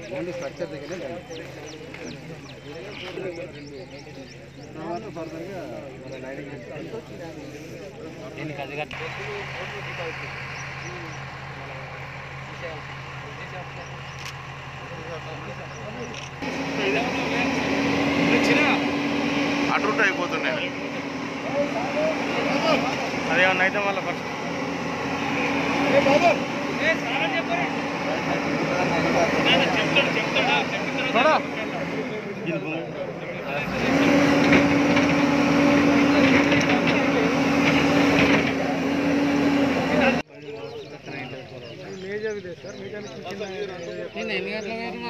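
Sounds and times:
crowd talking faintly: 0.0s - 45.0s
engine idling: 0.0s - 45.0s.

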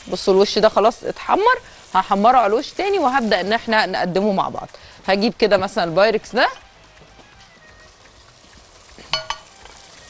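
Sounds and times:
tomato slices sizzling in oil: 0.0s - 10.0s.

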